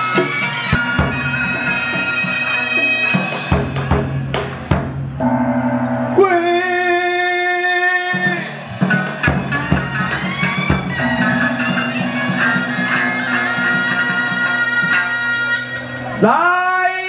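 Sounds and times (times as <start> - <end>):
double-reed oboe held notes: 0.0 - 3.7, 9.2 - 16.3
drum strokes: 0.0 - 7.0, 8.1 - 15.7
gong strokes: 5.2 - 6.6, 10.6 - 16.2.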